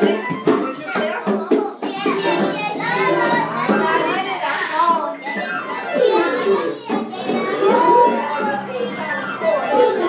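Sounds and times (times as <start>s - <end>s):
children chattering and calling out: 0.0s - 10.0s
music playing: 2.1s - 10.0s.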